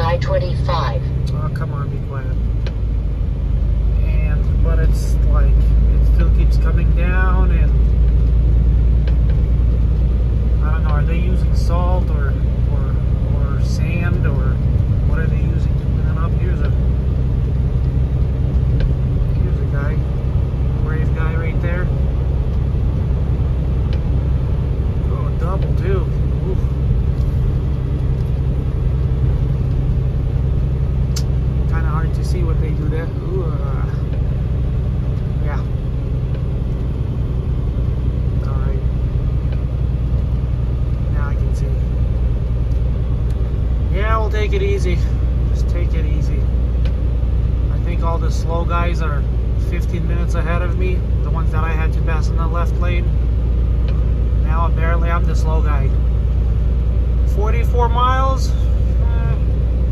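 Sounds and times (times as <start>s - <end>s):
road noise inside cab: 0.0s - 59.9s
truck diesel engine drone: 0.0s - 59.9s.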